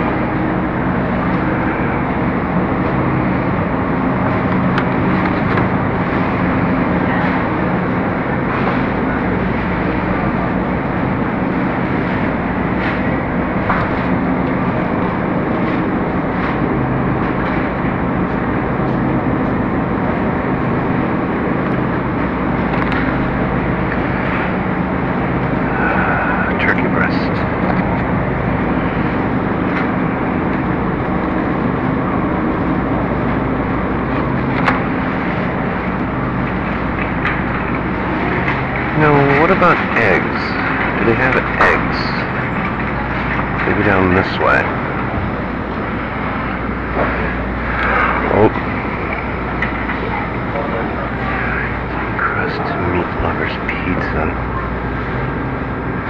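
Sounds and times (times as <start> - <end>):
continuous rushing noise: 0.0 - 56.0
distant voices: 0.0 - 56.0
refrigerated display cases humming: 0.0 - 56.0.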